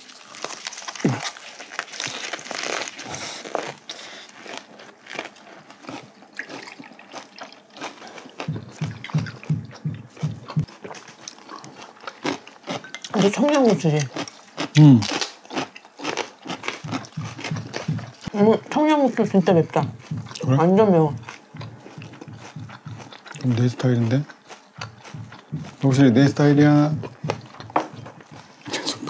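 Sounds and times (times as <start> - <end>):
chewing and crunching lettuce: 0.0 - 29.0.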